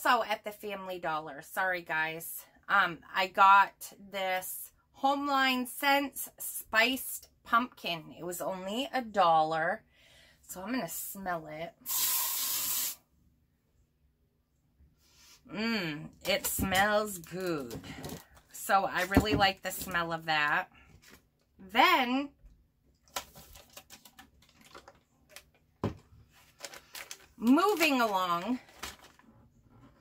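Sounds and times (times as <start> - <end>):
aerosol spray hiss: 11.9 - 13.0.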